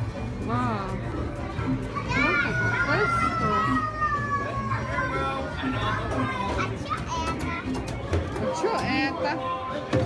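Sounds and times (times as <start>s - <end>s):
crowd hubbub: 0.0s - 10.0s
children's voices: 1.8s - 7.9s.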